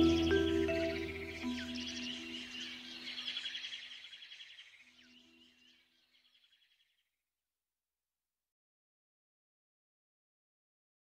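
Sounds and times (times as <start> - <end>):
soft background music: 0.0 - 3.2
birds chirping and trilling: 0.0 - 7.1.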